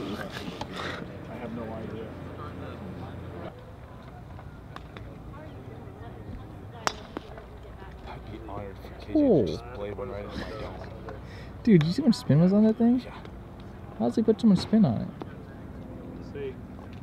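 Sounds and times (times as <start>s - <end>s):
spectator chatter: 0.0s - 16.8s.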